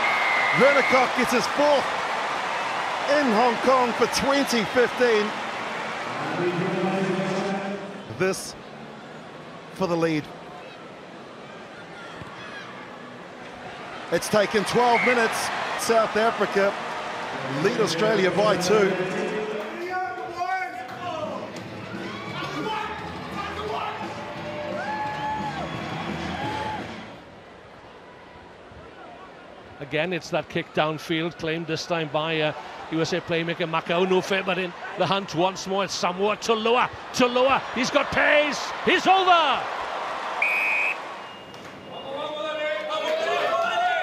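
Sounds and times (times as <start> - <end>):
crowd noise: 0.0 - 44.0.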